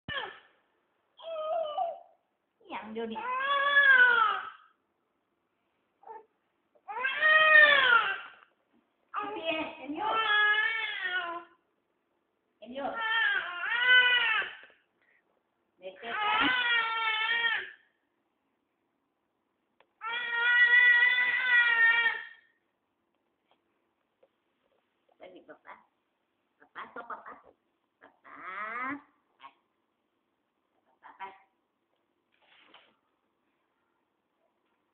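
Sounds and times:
baby crying: 0:01.2 - 0:02.2, 0:03.2 - 0:04.7, 0:06.9 - 0:08.4, 0:13.0 - 0:14.7, 0:16.1 - 0:17.8, 0:20.0 - 0:22.6.

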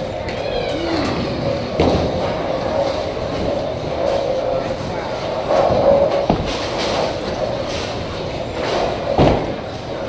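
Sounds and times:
bowling balls rolling: 0:00.0 - 0:10.0.

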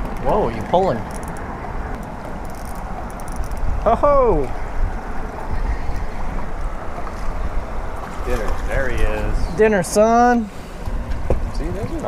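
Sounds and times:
fishing reel ticking: 0:01.0 - 0:01.5, 0:02.4 - 0:03.7
wind on microphone: 0:01.1 - 0:09.6
man exclaiming: 0:03.8 - 0:04.6.

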